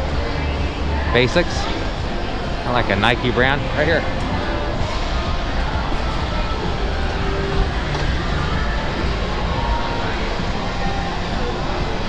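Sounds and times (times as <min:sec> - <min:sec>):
busy shopping mall din: 0:00.0 - 0:12.0
escalator low rumble: 0:00.0 - 0:12.0.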